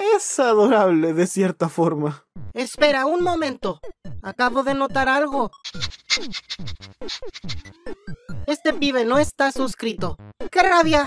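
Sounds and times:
rising tone: 5.6s - 8.5s
pug snuffling and snorting: 5.7s - 7.8s.

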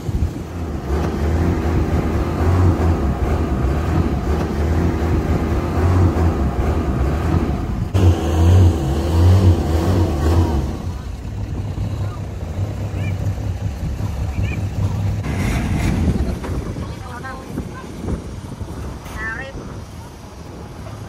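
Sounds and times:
boat engine running: 0.0s - 21.0s
water noise: 0.0s - 21.0s
wind: 0.0s - 21.0s.

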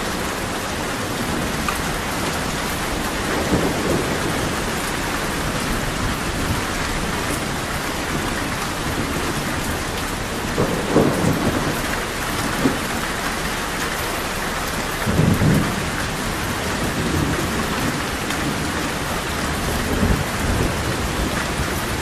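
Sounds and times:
heavy rain pattering: 0.0s - 22.0s
thunder rumbling: 0.0s - 22.0s.

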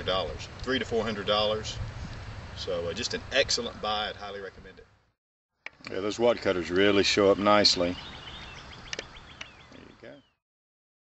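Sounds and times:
bird calling: 6.6s - 10.4s.

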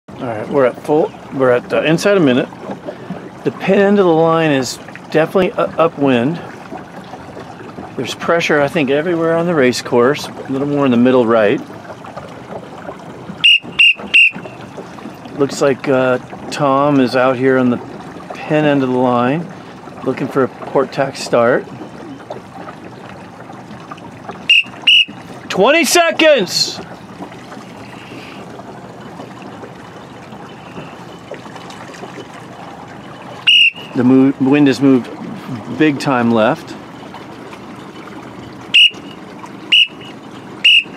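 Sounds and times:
wind and water hiss: 0.1s - 40.9s
high-pitched signal beeps: 13.4s - 14.4s, 24.5s - 25.2s, 33.5s - 34.0s
loud whistle blast: 13.4s - 14.5s, 24.5s - 25.2s, 33.5s - 34.0s, 38.8s - 40.9s.

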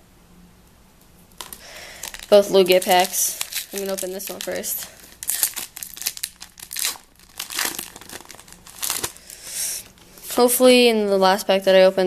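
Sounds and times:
foil wrapper crinkling: 1.3s - 10.2s.

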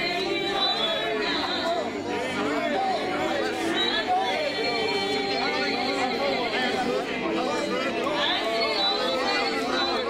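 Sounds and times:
people praying aloud: 0.0s - 10.0s.

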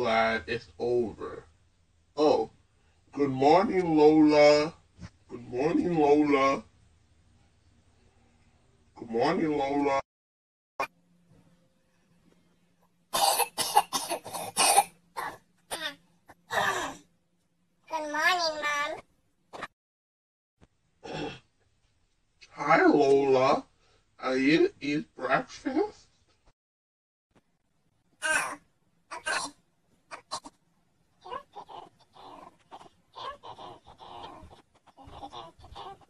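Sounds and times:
person coughing: 13.2s - 15.3s.

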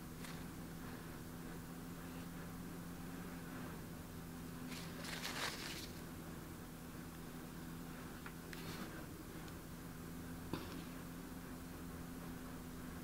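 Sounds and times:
faint low hum: 0.0s - 13.0s
rustling scrape: 4.6s - 6.0s.

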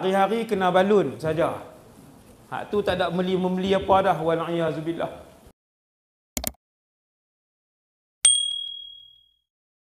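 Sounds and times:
high notification ding: 8.3s - 9.4s.

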